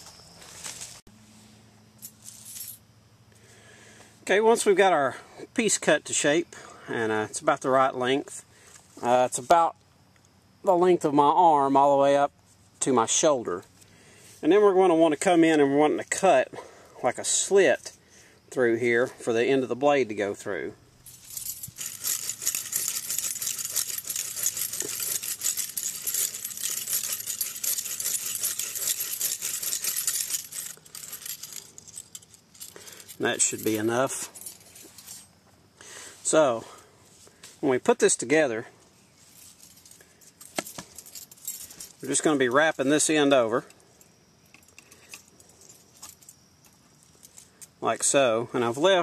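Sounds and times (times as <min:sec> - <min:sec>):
saw rasping through wood: 0:21.8 - 0:30.8.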